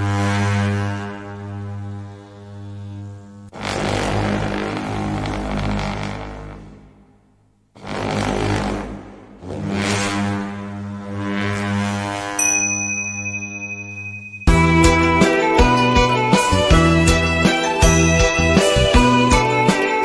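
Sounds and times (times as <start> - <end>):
high ringing tones: 12.4 - 16.2
steady drone: 12.4 - 19.3.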